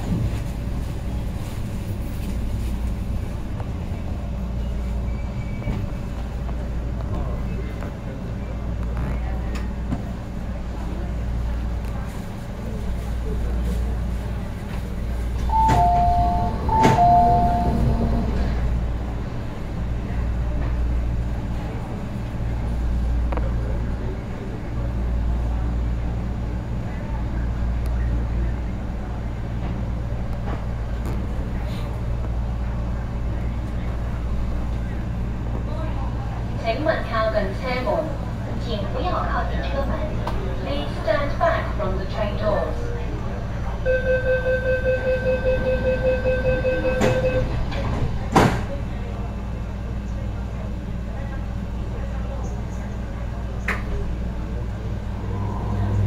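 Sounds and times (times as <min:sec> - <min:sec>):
train equipment humming: 0:00.0 - 0:56.0.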